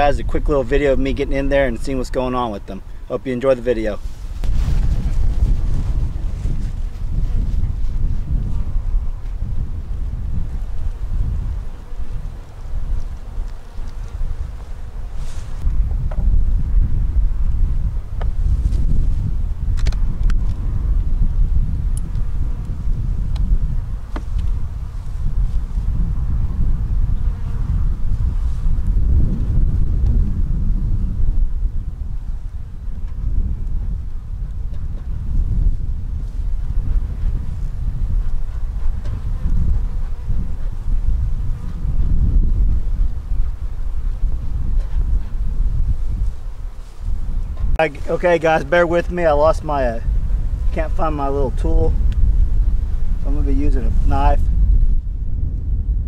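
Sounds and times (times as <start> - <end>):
wind rumble on microphone: 0.0 - 56.0
bees buzzing: 8.6 - 15.7.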